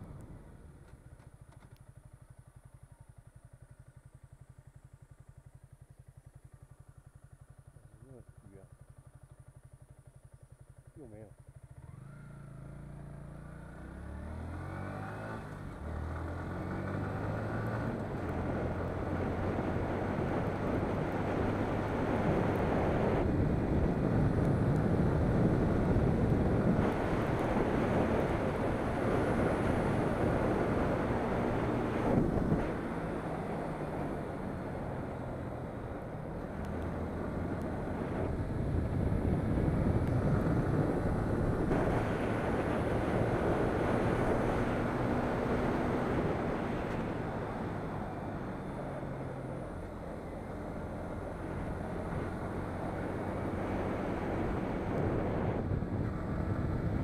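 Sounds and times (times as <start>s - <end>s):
wind and road rush on microphone: 0.0s - 2.2s, 11.7s - 57.0s
motorcycle engine accelerating: 0.0s - 57.0s.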